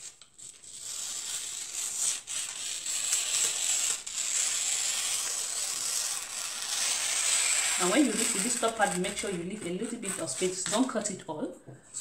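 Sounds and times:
scissors cutting paper: 0:00.0 - 0:11.1.

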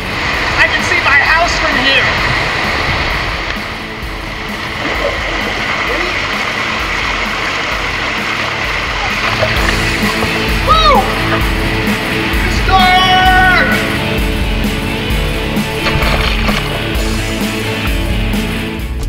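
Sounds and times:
water rushing down a slide: 0:00.0 - 0:11.7
voices calling: 0:03.6 - 0:18.6.

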